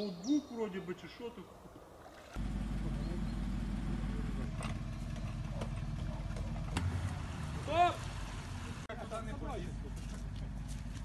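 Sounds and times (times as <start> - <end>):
truck engine rumbling: 1.5 - 11.0.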